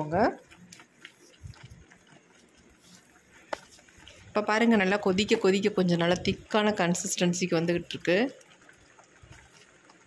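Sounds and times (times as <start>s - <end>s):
spatula stirring: 0.0s - 10.0s
thick liquid bubbling: 0.0s - 10.0s.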